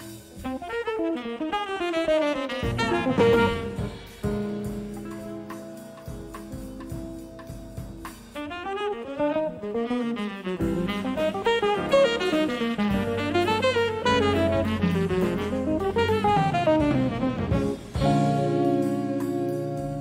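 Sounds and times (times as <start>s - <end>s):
tenor saxophone playing fast: 0.0s - 4.2s, 8.4s - 20.0s
jazz drum kit and band: 0.0s - 20.0s.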